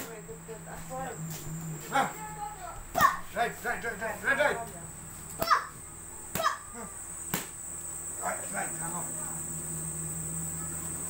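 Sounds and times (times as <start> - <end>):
steady high-pitched whine: 0.0 - 11.0
boxing gloves smacking mitts: 6.3 - 6.6, 7.3 - 7.6.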